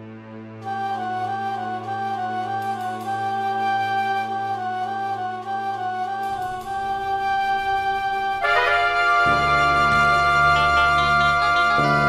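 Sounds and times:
flute-like melody: 0:00.1 - 0:12.0
low sustained layer: 0:01.9 - 0:12.0
organ-like chords: 0:04.7 - 0:12.0.

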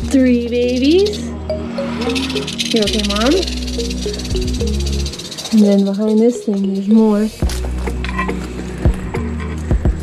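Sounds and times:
rattlesnake rattling: 0:00.0 - 0:10.0.

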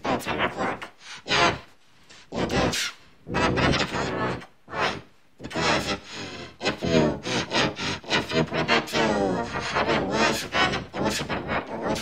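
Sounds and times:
pitch-shifted voice-like phrases: 0:00.0 - 0:01.7, 0:02.3 - 0:12.0.

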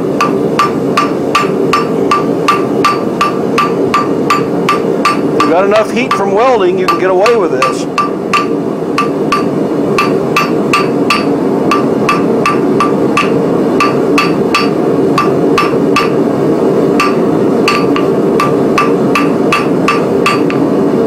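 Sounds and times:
gas forge roaring: 0:00.0 - 0:21.0
hammer striking steel on anvil: 0:00.1 - 0:16.3, 0:17.0 - 0:20.7.

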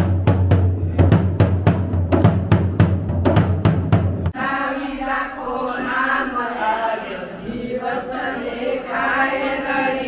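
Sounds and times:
large drum beaten in quick rhythm: 0:00.0 - 0:04.3.

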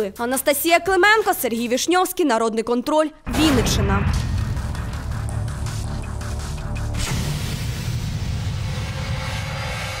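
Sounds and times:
low rumbling drone: 0:03.3 - 0:10.0.

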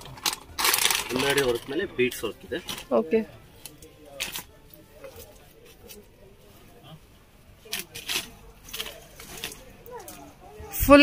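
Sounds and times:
plastic bag crinkling: 0:00.0 - 0:03.1, 0:07.6 - 0:10.3.

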